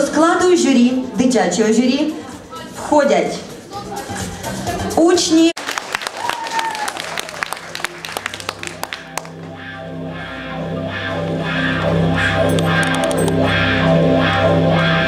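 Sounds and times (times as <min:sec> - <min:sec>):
guitar-led music: 0:07.7 - 0:15.0
scattered clicks: 0:12.5 - 0:13.4.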